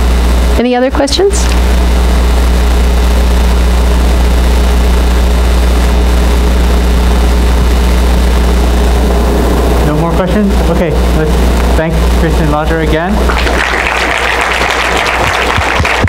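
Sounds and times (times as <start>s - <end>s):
low hum: 0.0s - 16.0s.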